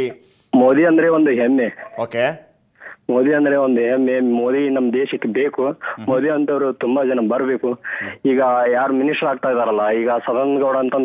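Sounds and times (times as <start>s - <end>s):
man talking over telephone: 0.0s - 2.4s, 3.1s - 11.0s.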